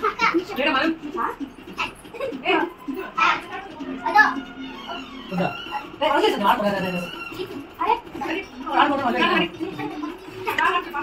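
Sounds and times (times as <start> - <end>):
young children talking: 1.8 - 5.5.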